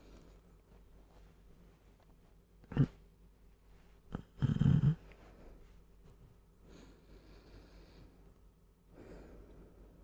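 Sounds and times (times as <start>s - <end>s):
man breathing in sleep: 6.6s - 8.3s.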